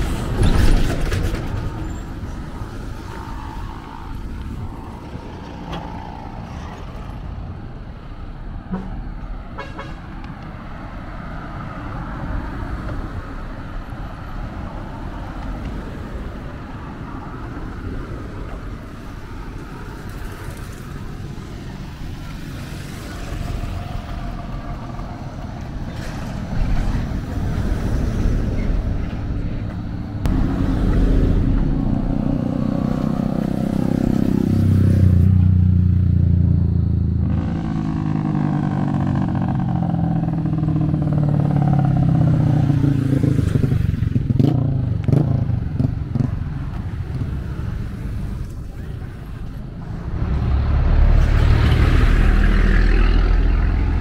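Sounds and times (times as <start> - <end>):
motorcycles passing: 0.0 - 8.4, 9.4 - 54.0
cars driving past: 0.0 - 54.0.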